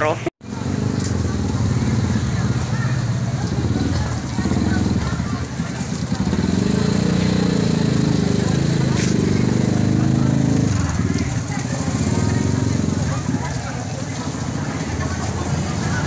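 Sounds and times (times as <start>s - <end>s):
crowd voices: 0.0s - 16.0s
motorcycle engine idling: 0.4s - 16.0s.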